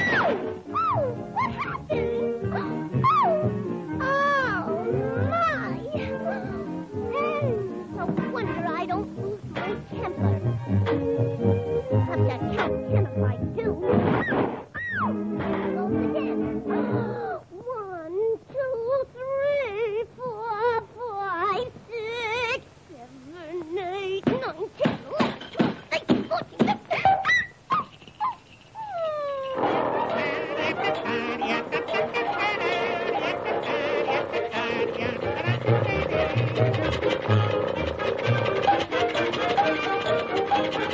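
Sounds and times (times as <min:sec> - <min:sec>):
orchestra playing bouncy tune: 0:00.0 - 0:14.0, 0:29.7 - 0:40.9
cartoon soundtrack music: 0:00.0 - 0:14.1, 0:14.9 - 0:17.3, 0:29.6 - 0:40.9.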